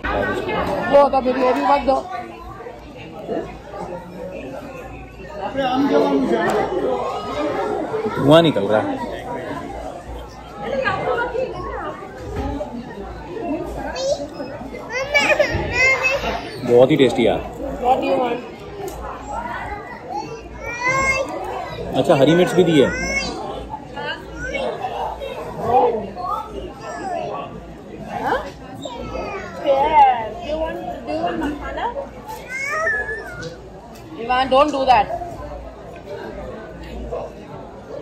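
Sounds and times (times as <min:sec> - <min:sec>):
background chatter: 0:00.0 - 0:38.0
child squealing and babbling: 0:32.4 - 0:33.5.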